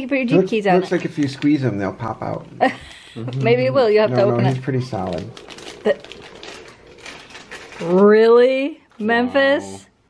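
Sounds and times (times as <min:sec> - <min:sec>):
plastic wrapper crinkling: 0:00.9 - 0:02.4, 0:03.9 - 0:08.3.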